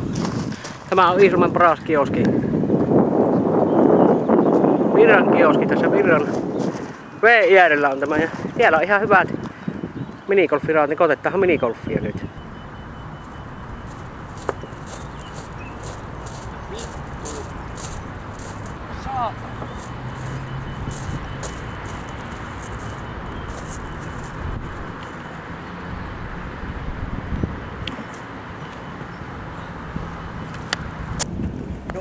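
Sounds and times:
road traffic: 0.0s - 32.0s.

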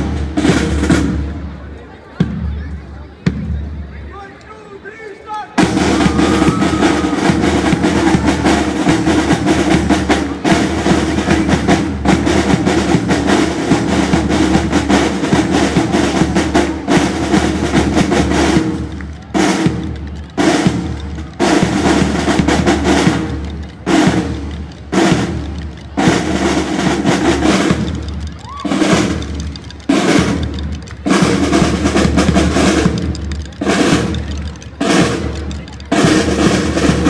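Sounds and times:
marching snare drums: 0.0s - 4.2s, 5.6s - 37.0s.

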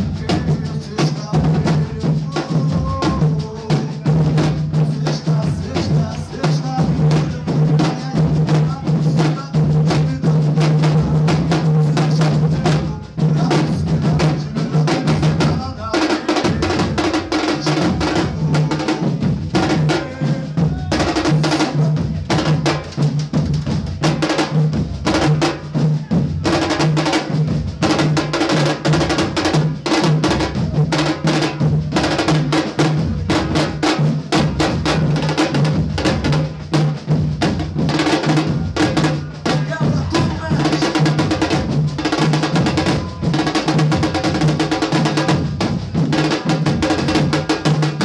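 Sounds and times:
deep bass drums pounding: 0.0s - 48.0s.

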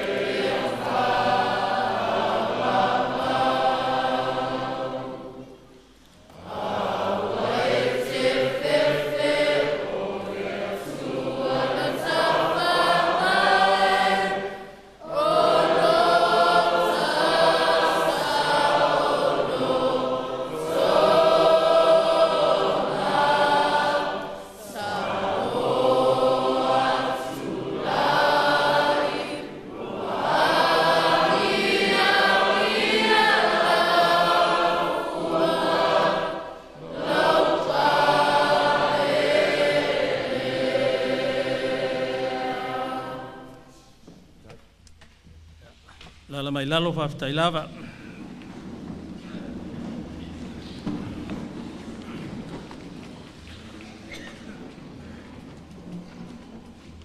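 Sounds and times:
choir singing: 0.0s - 44.0s.

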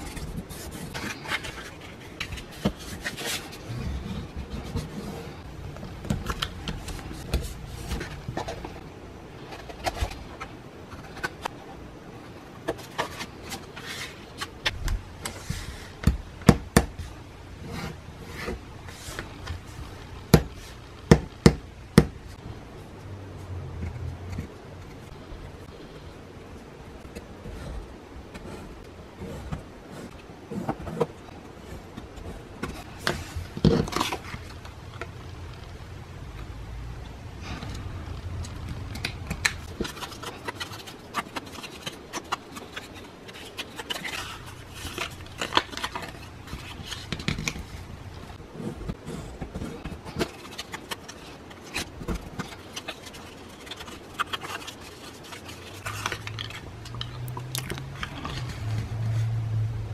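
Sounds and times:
low steady hum: 0.0s - 59.9s
paper crackling and crinkling: 38.3s - 59.3s.

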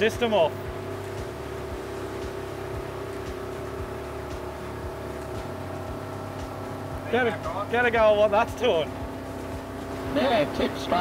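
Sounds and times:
motorboat engine droning: 0.0s - 11.0s.

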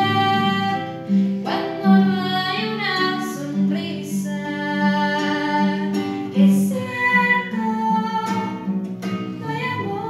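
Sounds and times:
acoustic guitar: 0.0s - 10.0s
girl singing a ballad: 0.0s - 10.0s.

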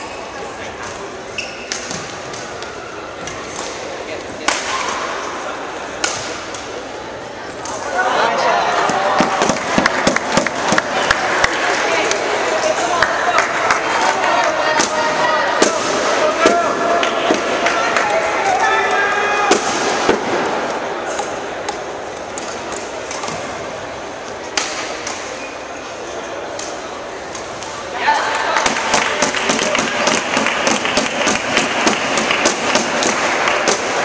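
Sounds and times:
voices in a hall: 0.0s - 34.0s
racket hitting shuttlecock: 6.0s - 6.7s, 28.6s - 34.0s.

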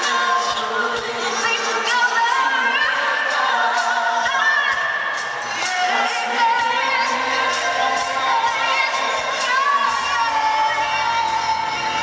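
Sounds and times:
band backing with soft beat: 0.0s - 12.0s
live pop ballad singing: 0.0s - 12.0s.

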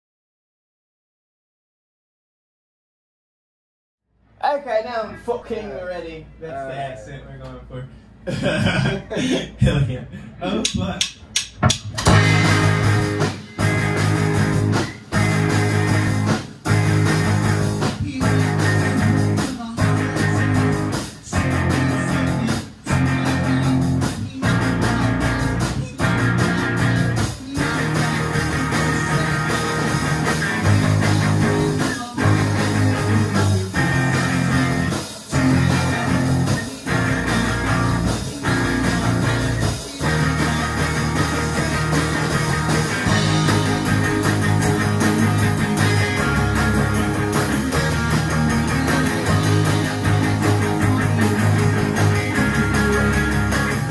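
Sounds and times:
rock band playing: 11.2s - 53.9s.

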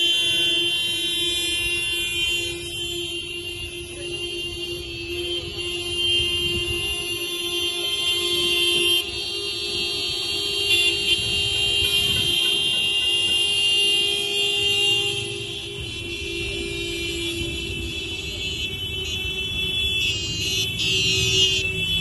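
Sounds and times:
low rumble of traffic: 0.0s - 22.0s
vehicle horns blasting: 0.0s - 22.0s.

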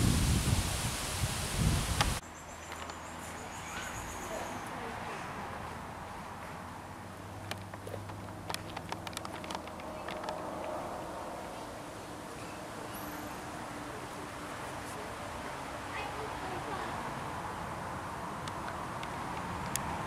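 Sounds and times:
run of sharp clicks: 7.4s - 10.8s.

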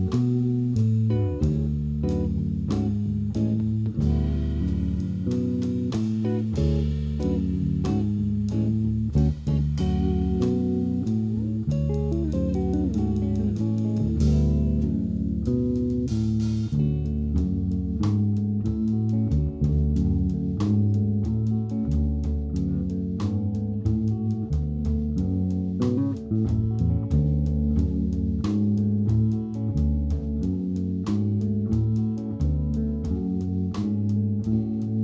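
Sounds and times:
drum kit beat: 0.0s - 35.0s
electric bass line: 0.0s - 35.0s
electric guitar: 0.0s - 35.0s.

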